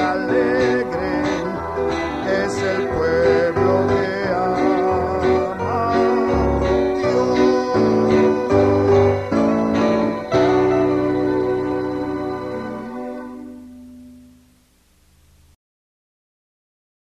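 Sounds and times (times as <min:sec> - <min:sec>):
instrumental worship music: 0:00.0 - 0:14.8
guitar: 0:00.0 - 0:15.5
low bass notes: 0:00.0 - 0:15.6.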